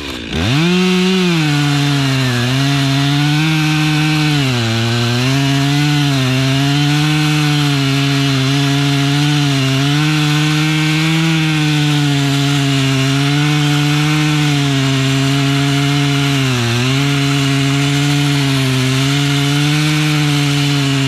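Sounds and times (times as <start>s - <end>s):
chainsaw cutting wood: 0.0s - 21.0s.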